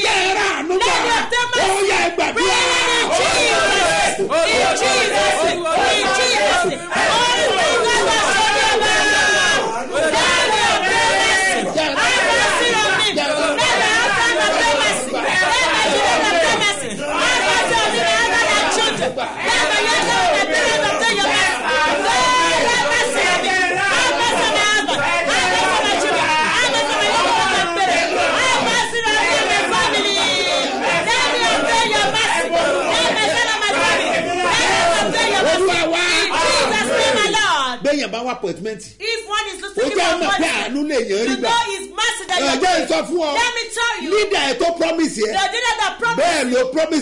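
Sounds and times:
babble of praying voices: 0.0 - 37.9, 39.0 - 47.0
man praying aloud: 42.3 - 43.4.

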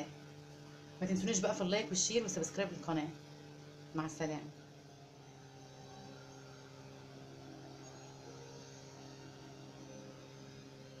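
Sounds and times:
low hum of held tones: 0.0 - 11.0.

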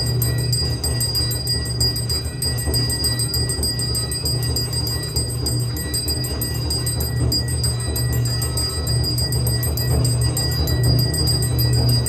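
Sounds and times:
bells rung rapidly: 0.0 - 12.0
loud low throbbing: 0.0 - 12.0.

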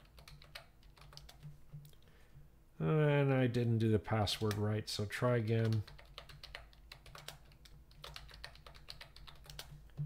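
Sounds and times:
keyboard typing: 0.0 - 2.0, 5.5 - 10.0.

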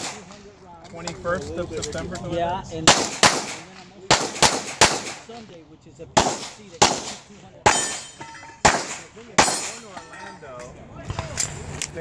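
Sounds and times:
loud sharp pistol shot: 2.8 - 5.3, 6.2 - 9.9.

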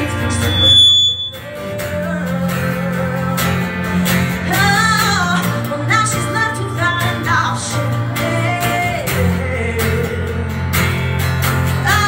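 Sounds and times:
acoustic guitar: 0.0 - 12.0
woman singing: 1.4 - 10.5, 11.7 - 12.0.

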